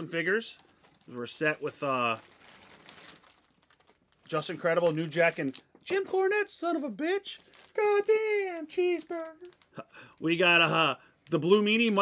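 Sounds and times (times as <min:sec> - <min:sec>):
plastic packaging crinkling: 0:00.0 - 0:06.2, 0:07.0 - 0:12.0.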